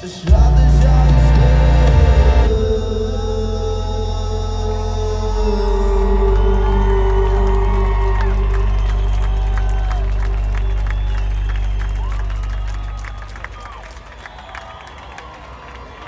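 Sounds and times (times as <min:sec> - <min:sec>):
live band sustained chord: 0:00.3 - 0:13.2
crowd cheering and whooping: 0:05.4 - 0:16.0
crowd clapping: 0:05.6 - 0:16.0.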